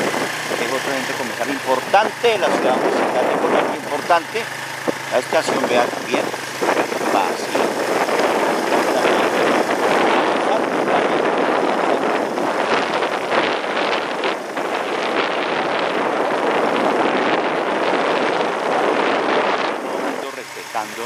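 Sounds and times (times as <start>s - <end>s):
road noise: 0.0s - 21.0s
wind on microphone: 0.0s - 21.0s.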